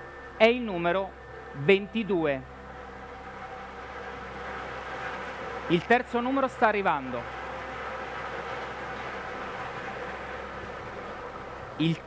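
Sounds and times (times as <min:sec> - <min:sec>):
machine motor humming: 0:00.0 - 0:12.0.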